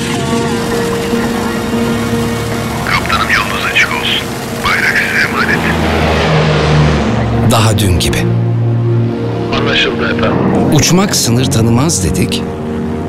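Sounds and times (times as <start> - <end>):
deep drone: 0.0 - 13.0
music: 0.0 - 13.0
propeller aircraft engines: 0.0 - 13.0
radio voice chatter: 2.8 - 6.0.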